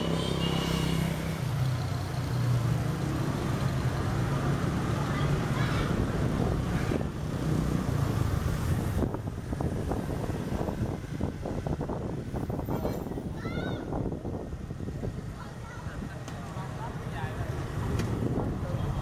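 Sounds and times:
motorbike engines: 0:00.0 - 0:19.0
street traffic: 0:00.0 - 0:19.0
wind buffeting microphone: 0:05.2 - 0:19.0.

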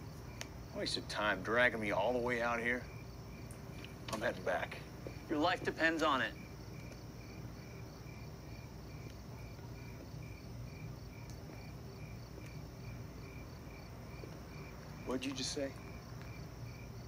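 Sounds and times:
crickets chirping: 0:00.0 - 0:17.0
low steady hum: 0:00.0 - 0:17.0.

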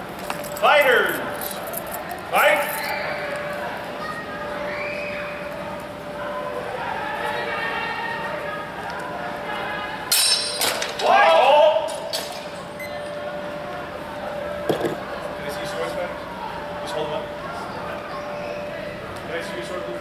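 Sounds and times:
steel swords clashing: 0:10.1 - 0:10.8.

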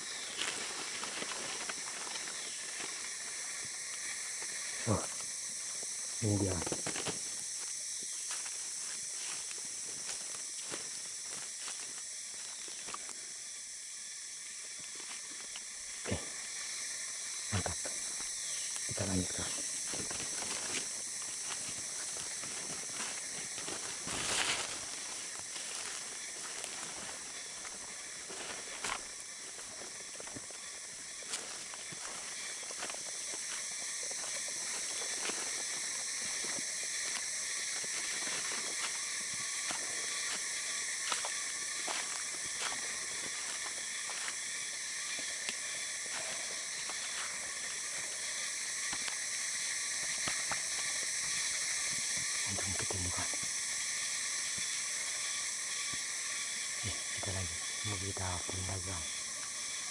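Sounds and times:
footsteps on dry leaves: 0:00.0 - 0:04.6, 0:19.7 - 0:45.1
insects buzzing: 0:00.0 - 0:59.9.

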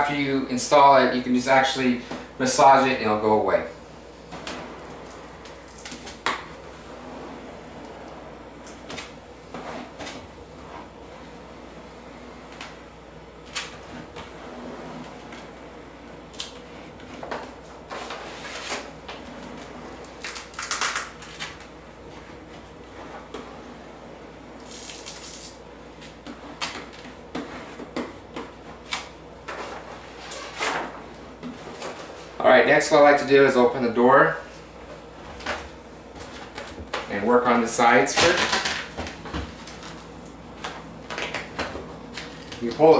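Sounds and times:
vinyl rustling: 0:00.0 - 0:42.9
squeegee scraping vinyl film: 0:16.3 - 0:23.6, 0:24.6 - 0:28.0, 0:36.4 - 0:42.9.

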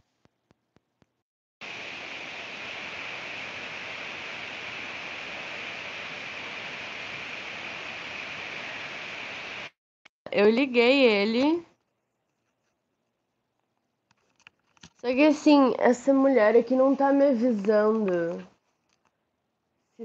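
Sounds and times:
static hiss: 0:01.6 - 0:09.8.

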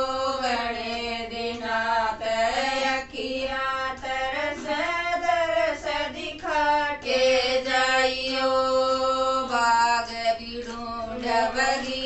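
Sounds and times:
women singing devotional song: 0:00.0 - 0:12.0.

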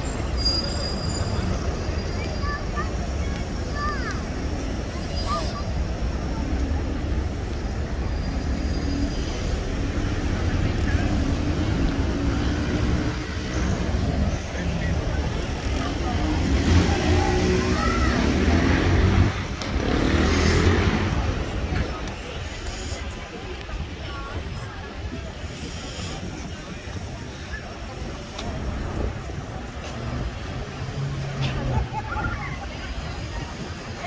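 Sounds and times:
passers-by talking: 0:00.0 - 0:34.0
road traffic and bus engines rumbling: 0:00.0 - 0:34.0.

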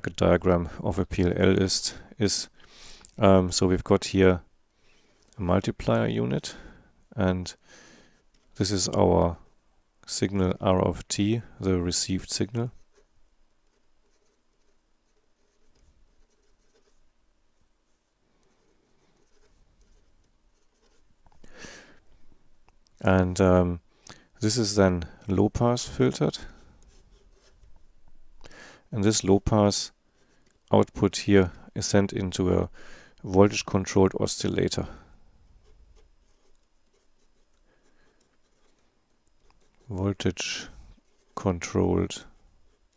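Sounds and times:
marker pen scratching paper: 0:12.7 - 0:21.4, 0:26.0 - 0:27.8, 0:35.6 - 0:42.9.

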